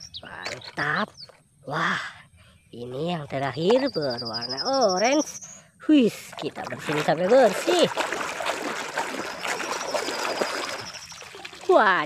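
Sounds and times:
foam bubbles crackling: 0:06.1 - 0:12.0
soapy water sloshing and splashing: 0:06.1 - 0:12.0.

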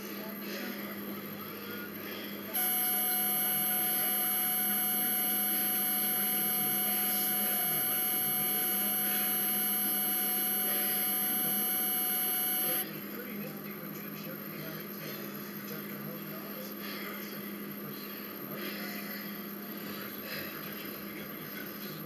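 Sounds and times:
machine-like whine: 0:02.6 - 0:12.8.

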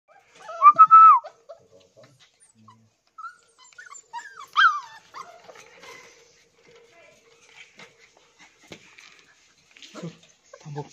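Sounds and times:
puppies whining: 0:00.1 - 0:10.9
faint clicks and rustles: 0:03.0 - 0:10.9.

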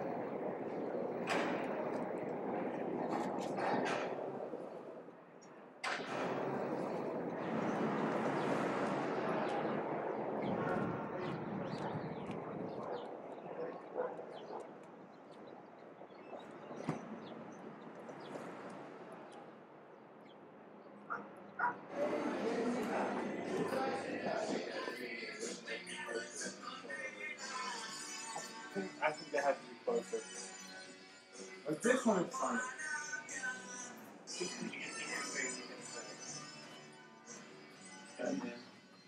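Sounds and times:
city street noise: 0:00.0 - 0:39.0
dog barking: 0:12.9 - 0:14.7, 0:21.1 - 0:21.8.

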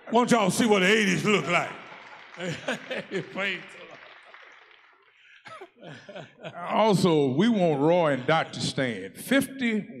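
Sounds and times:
man chuckling into microphone: 0:05.5 - 0:06.7.

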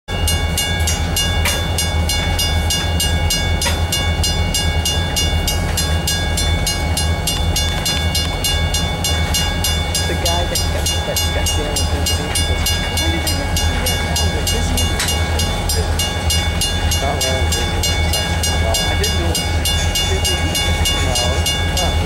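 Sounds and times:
railroad crossing bell ringing: 0:00.1 - 0:22.0.

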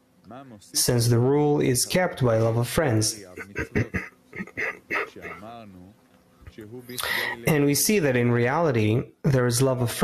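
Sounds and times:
man laughing softly: 0:03.2 - 0:05.6.

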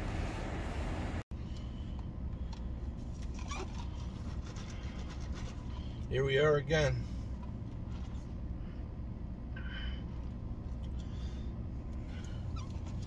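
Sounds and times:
truck idling hum: 0:00.0 - 0:13.0.

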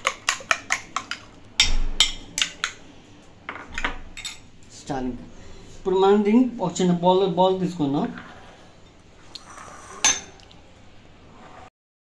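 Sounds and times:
glass bowl clinking on steel bowls: 0:10.0 - 0:10.4.

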